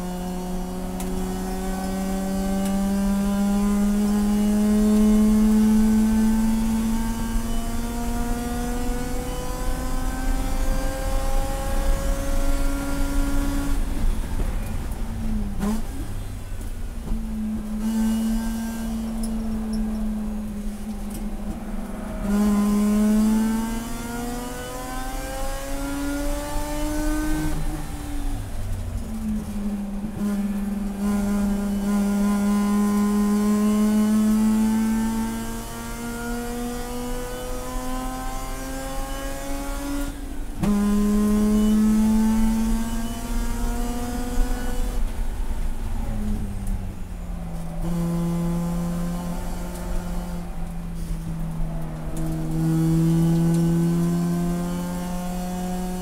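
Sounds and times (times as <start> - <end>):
race car engine at full throttle: 0.0 - 56.0.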